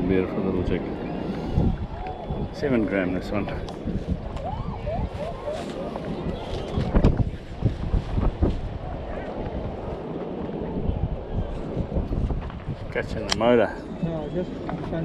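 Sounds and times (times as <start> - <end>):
faint voices: 0.0 - 15.0
wind buffeting microphone: 0.0 - 15.0.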